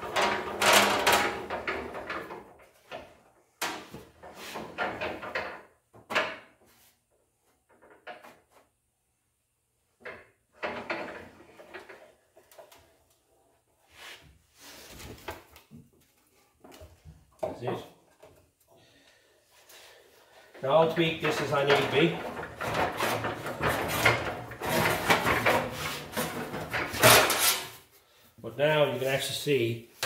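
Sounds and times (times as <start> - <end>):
metal scraping and clunking: 20.6 - 27.8.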